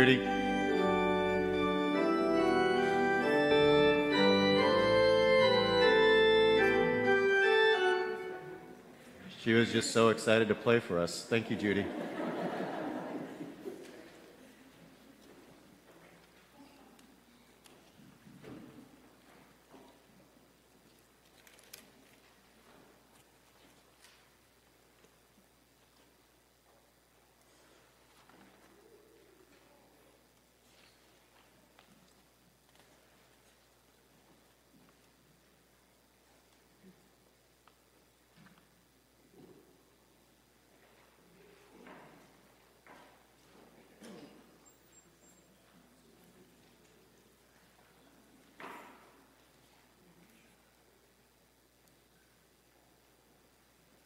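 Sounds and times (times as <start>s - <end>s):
church organ playing chords: 0.0s - 8.9s.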